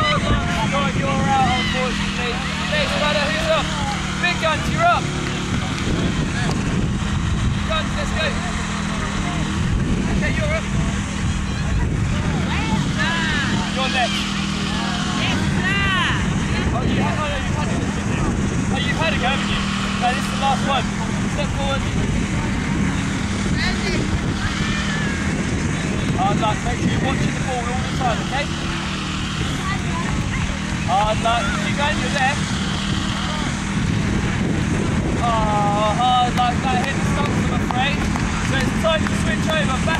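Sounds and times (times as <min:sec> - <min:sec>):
voices calling and shouting: 0:00.0 - 0:39.9.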